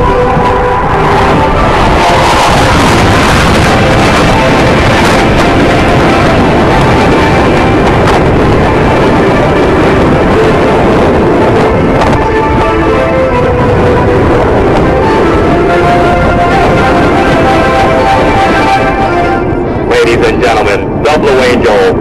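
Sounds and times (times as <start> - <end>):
music playing: 0.0 - 21.0
jet roar overhead: 0.0 - 22.0.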